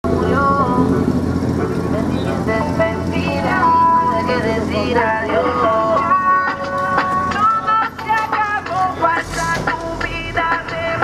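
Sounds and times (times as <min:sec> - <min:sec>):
car engine idling: 0:00.0 - 0:11.0
song with singing voice: 0:00.0 - 0:11.0.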